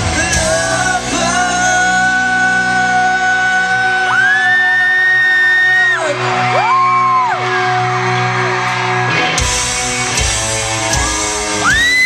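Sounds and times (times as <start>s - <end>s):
live pop-rock band playing: 0.0s - 12.0s
fans screaming: 3.0s - 9.3s, 10.3s - 12.0s.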